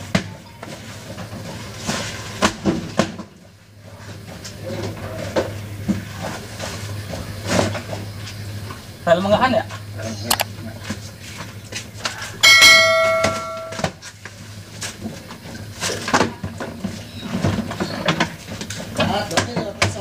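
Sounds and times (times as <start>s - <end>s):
steady low hum: 9.7s - 13.9s
notification bell chime: 12.4s - 13.8s.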